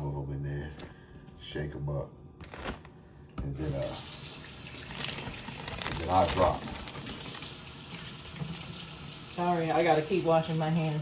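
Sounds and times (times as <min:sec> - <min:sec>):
tap water running into sink: 0:03.6 - 0:11.0.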